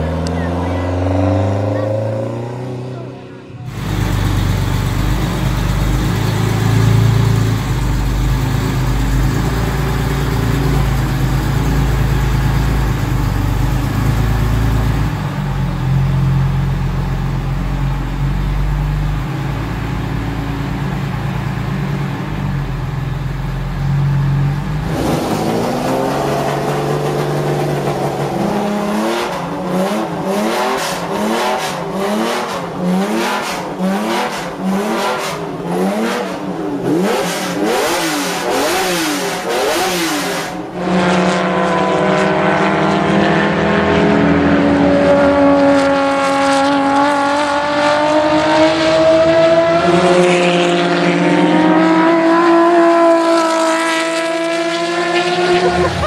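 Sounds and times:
car engine accelerating with upshift: 0.0s - 56.0s
car engine revving: 0.0s - 56.0s.

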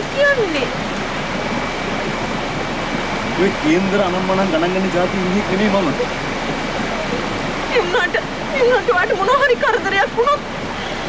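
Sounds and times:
faint high whine: 0.0s - 11.0s.

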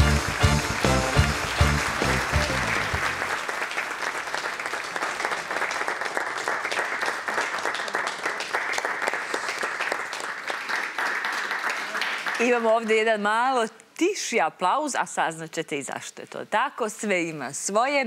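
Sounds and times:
theme music with bass beat: 0.0s - 3.2s
studio audience applauding: 0.0s - 12.7s.

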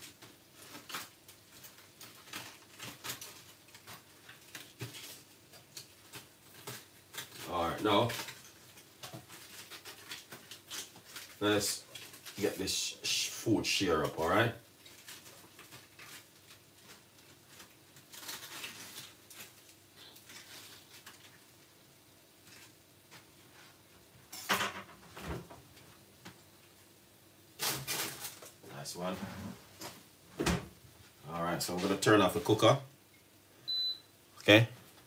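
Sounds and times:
person speaking: 7.4s - 8.2s, 11.4s - 14.6s, 28.7s - 29.6s, 31.2s - 32.9s.

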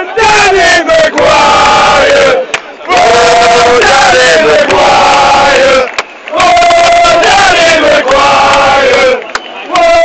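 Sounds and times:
crowd singing a chant: 0.0s - 10.0s.

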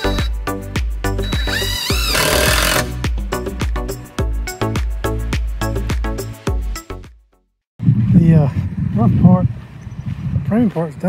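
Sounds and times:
cordless drill driving screw: 0.0s - 0.3s, 1.2s - 2.9s
background music with steady beat: 0.0s - 7.4s.

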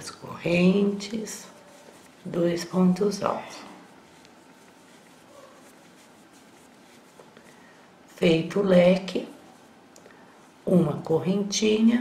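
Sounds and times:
low room noise: 0.0s - 12.0s
crochet hook working yarn: 0.3s - 7.4s.

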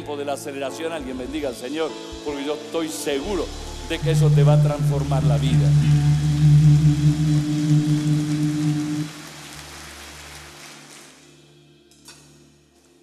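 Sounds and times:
low background music: 0.0s - 13.0s
crowd applauding: 4.9s - 11.4s.

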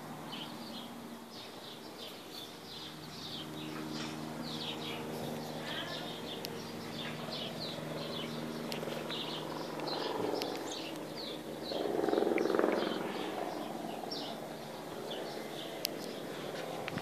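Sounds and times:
small birds chirping: 0.0s - 17.0s.

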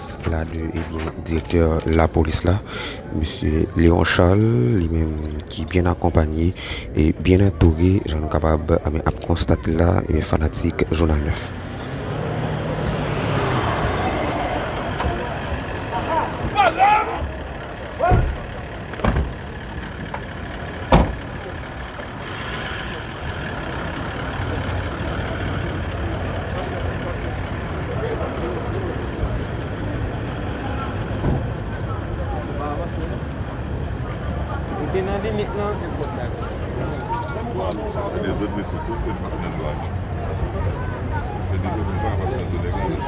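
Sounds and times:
engines rumbling: 0.0s - 43.0s
scattered voices: 0.0s - 43.0s.

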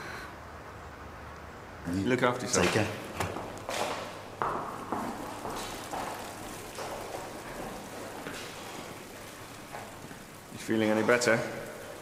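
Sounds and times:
hallway background hiss: 0.0s - 12.0s
footsteps on hard floor: 2.7s - 10.3s.

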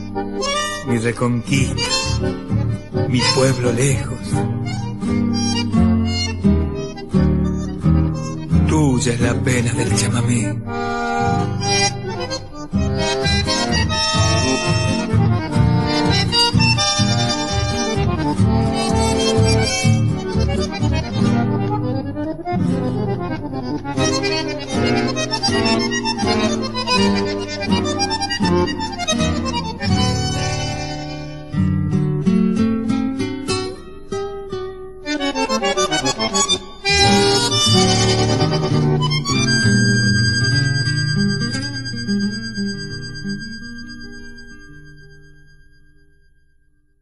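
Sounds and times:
regular bass beat: 0.0s - 33.3s, 35.2s - 44.2s
accordion folk music: 0.0s - 45.8s
plucked acoustic guitar: 0.0s - 46.1s.

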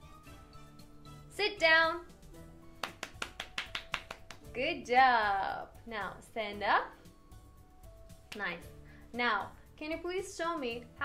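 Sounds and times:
soft background music: 0.0s - 11.0s
hand claps: 2.8s - 4.5s, 8.3s - 8.5s.

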